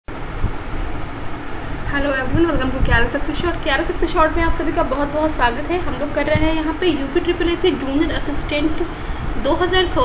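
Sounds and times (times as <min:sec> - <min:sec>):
steady background noise: 0:00.1 - 0:10.0
woman speaking: 0:01.9 - 0:10.0.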